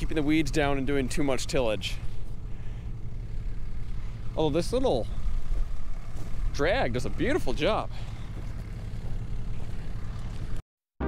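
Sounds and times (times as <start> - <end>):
tractor engine rumbling: 0.0 - 10.6.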